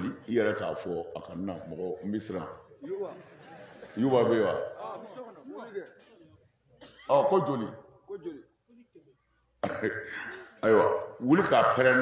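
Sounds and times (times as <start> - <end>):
man clearing his throat: 9.6 - 11.1.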